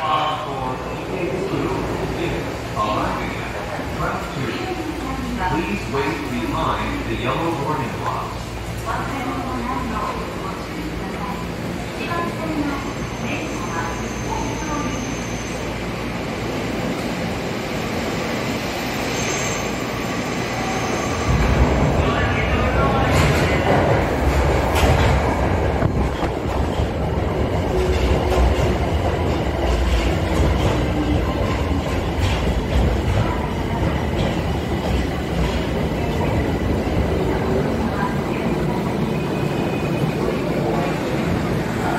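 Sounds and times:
subway train rumble: 0.0 - 41.9.

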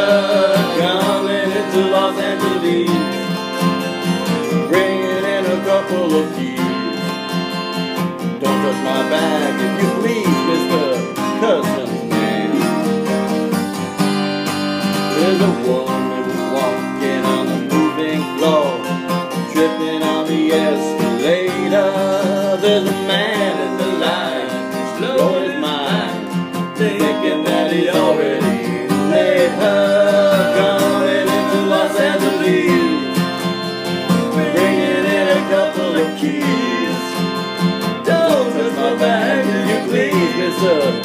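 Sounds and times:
acoustic guitars strumming: 0.0 - 41.0
bending lead guitar melody: 0.0 - 41.0.

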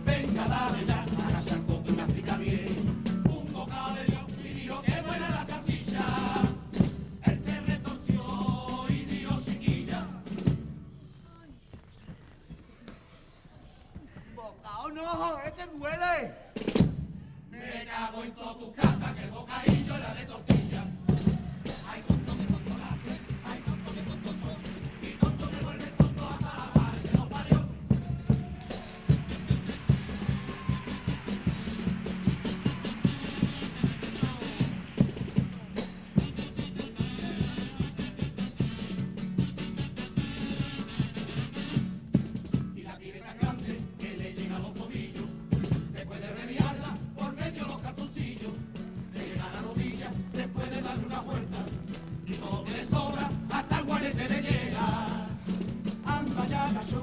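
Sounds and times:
band playing: 0.0 - 10.5, 18.8 - 57.0
bass drum and snare stroke: 18.8 - 42.8.

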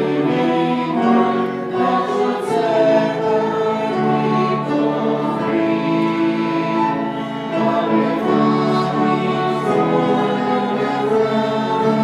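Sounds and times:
congregation singing a hymn: 0.0 - 12.0
piano: 0.0 - 12.0
violin: 0.0 - 12.0.

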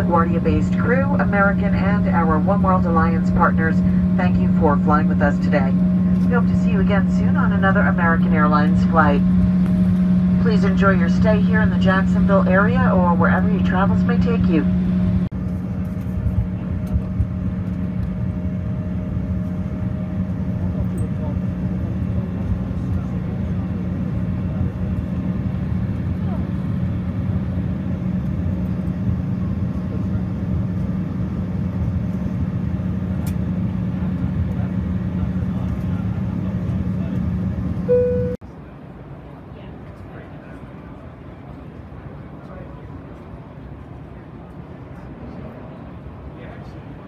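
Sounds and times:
jet cabin engine rush: 0.0 - 38.4
brief tone: 37.9 - 38.4.

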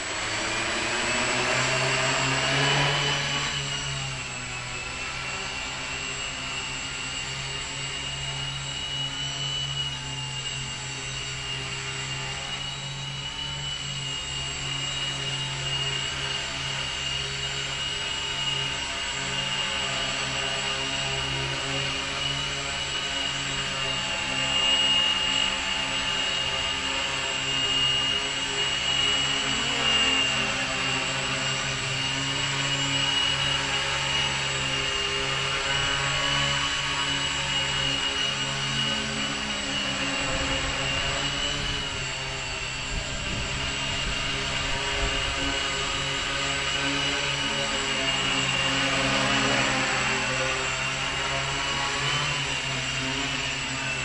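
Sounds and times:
multirotor drone hovering whine: 0.0 - 54.0.

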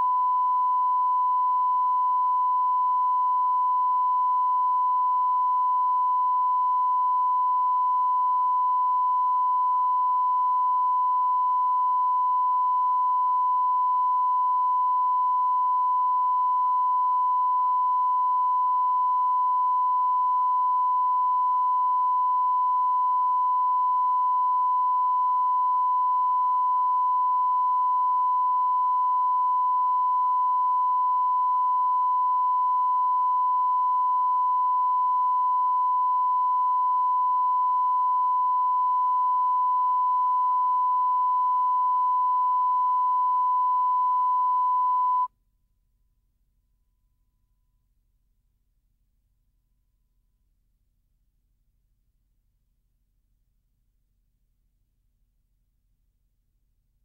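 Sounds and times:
steady test tone beep: 0.0 - 45.3.

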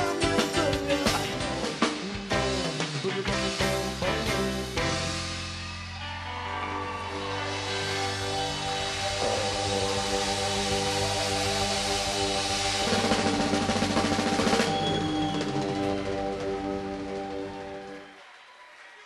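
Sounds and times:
drums and cymbals: 0.0 - 17.9.

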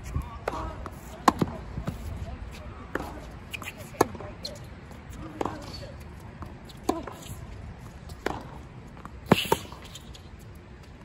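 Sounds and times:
racket striking tennis ball: 0.4 - 1.6, 8.1 - 9.9
tennis ball bouncing: 0.4 - 2.0, 2.8 - 4.6, 5.2 - 5.8, 6.4 - 10.1.

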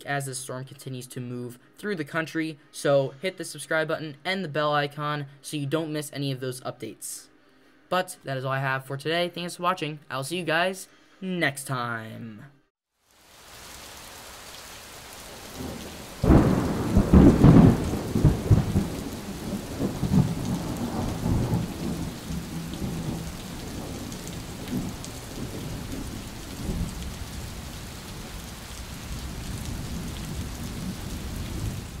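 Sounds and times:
rain falling: 13.0 - 32.0
thunder: 15.6 - 27.5, 29.1 - 32.0.

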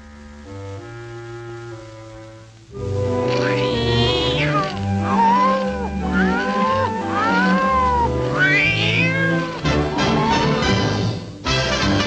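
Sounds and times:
orchestral cartoon music: 2.7 - 12.0
cartoon cat wailing meows: 3.3 - 10.6.

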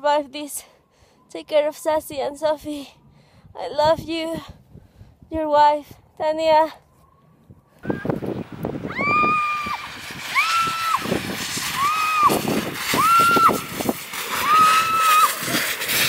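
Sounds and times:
steady rushing noise: 7.8 - 16.0
woman screaming: 8.9 - 11.1, 11.7 - 13.6, 14.3 - 15.4.

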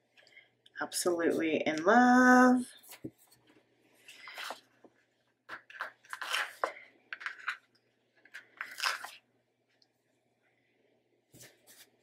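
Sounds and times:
paper rustling and scraping: 2.8 - 4.8, 5.5 - 7.6, 8.2 - 9.2, 11.3 - 12.0.

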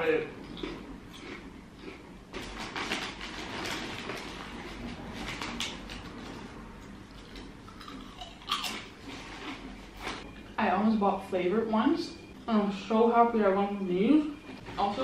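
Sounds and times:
chewing crunchy crisps: 0.4 - 10.2
crisp bag crinkling: 2.4 - 6.0.

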